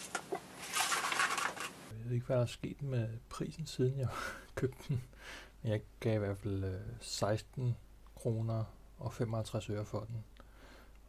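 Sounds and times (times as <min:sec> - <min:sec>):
plastic packaging rustling: 0:00.0 - 0:01.9.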